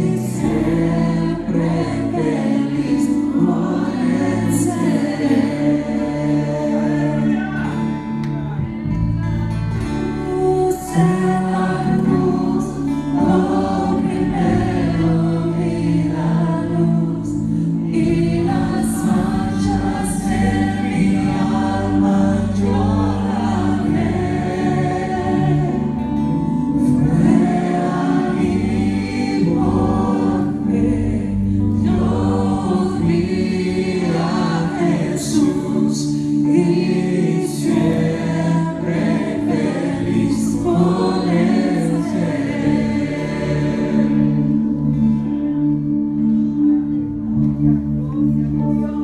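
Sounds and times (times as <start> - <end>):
people singing into microphones: 0.0 - 8.9, 9.6 - 46.6
worship band playing a hymn: 0.0 - 49.0.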